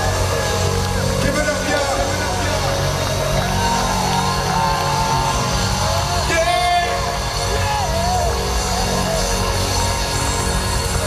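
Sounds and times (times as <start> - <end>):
steady bass: 0.0 - 11.0.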